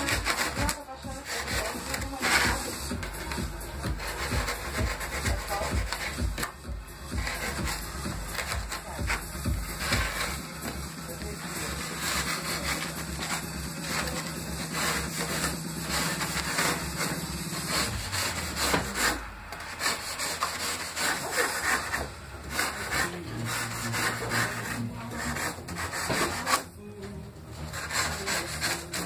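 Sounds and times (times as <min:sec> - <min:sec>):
styrofoam being scraped by hand: 0:00.0 - 0:26.8, 0:27.5 - 0:29.0.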